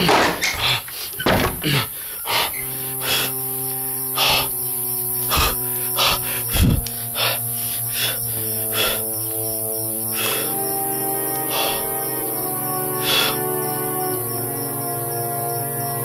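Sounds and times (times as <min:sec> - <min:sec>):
synthesizer chords: 0:02.6 - 0:16.0.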